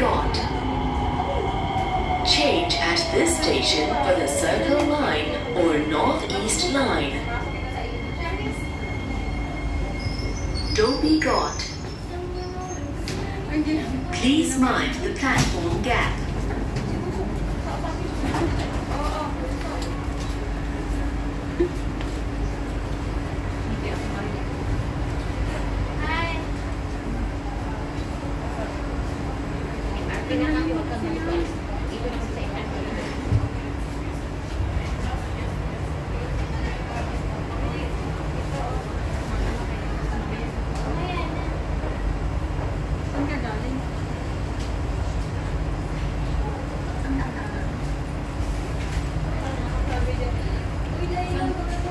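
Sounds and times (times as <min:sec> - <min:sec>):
idle train rumble and hum: 0:00.0 - 0:51.9
passengers moving about: 0:00.0 - 0:51.9.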